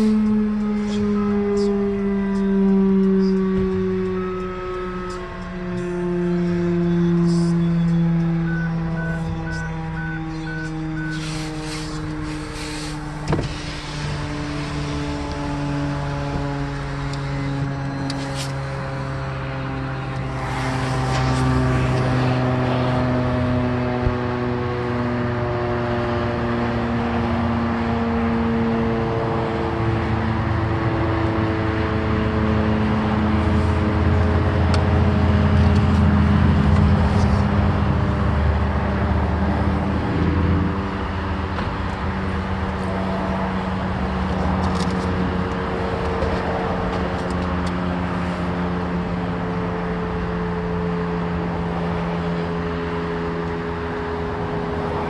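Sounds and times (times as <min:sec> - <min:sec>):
car engine and road rumble: 0:00.0 - 0:55.0
fire siren wailing: 0:00.0 - 0:55.0
sharp thump: 0:13.2 - 0:13.7.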